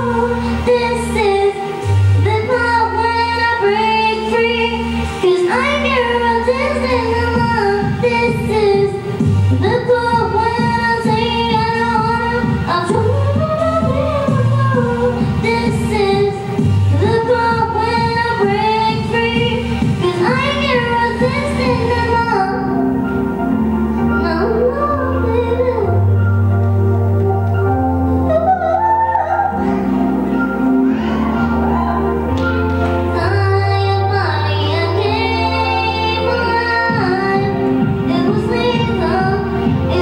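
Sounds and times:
girl singing into microphone: 0.0 - 22.8, 24.1 - 26.2, 32.4 - 40.0
instrumental accompaniment: 0.0 - 40.0
sustained bass notes: 0.0 - 40.0.

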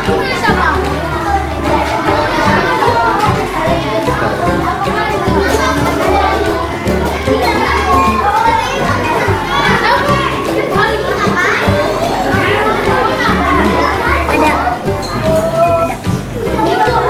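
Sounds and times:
background music with bass: 0.0 - 17.0
children chattering: 0.0 - 17.0.

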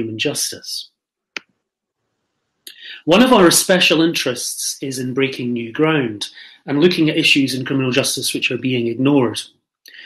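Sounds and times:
person speaking: 0.0 - 1.6, 2.7 - 10.0
person breathing: 2.7 - 3.1, 6.3 - 6.7.

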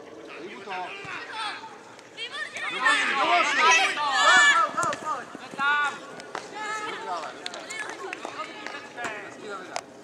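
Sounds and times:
young people shouting: 0.9 - 5.3.

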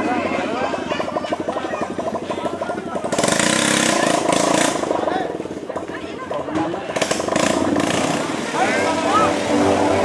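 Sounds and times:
crowd chatter: 0.0 - 10.0
motorcycle passing: 0.0 - 10.0.

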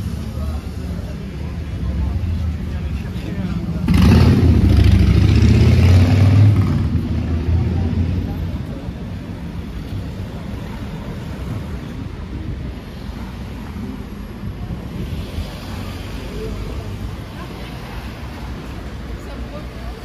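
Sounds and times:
passers-by: 0.0 - 20.0
street traffic: 0.0 - 20.0
vehicle passing close by: 3.8 - 8.1.

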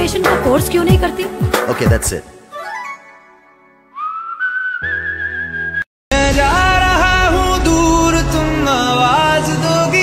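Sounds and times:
whistled note sliding up: 3.9 - 5.9
low bass tone: 6.1 - 9.4.

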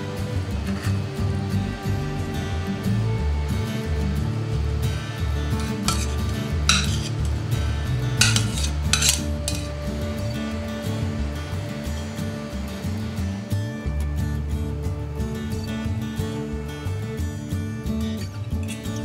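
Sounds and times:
background music: 0.0 - 19.0
frying pan scraping against utensil: 5.6 - 7.5, 8.2 - 9.9.

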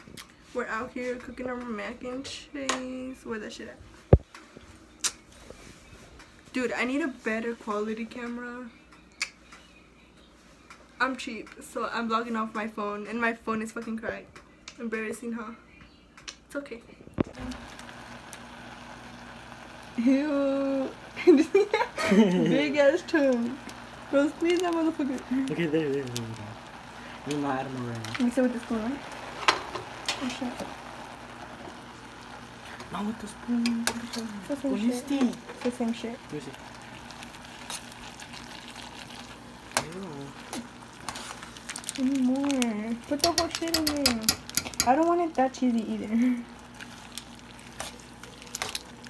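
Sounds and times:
spoon stirring in pot: 36.6 - 45.3, 46.5 - 49.0.

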